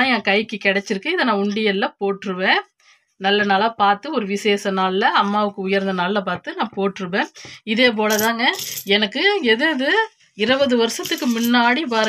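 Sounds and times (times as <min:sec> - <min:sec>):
coins clinking: 0:08.1 - 0:09.0, 0:10.9 - 0:12.0.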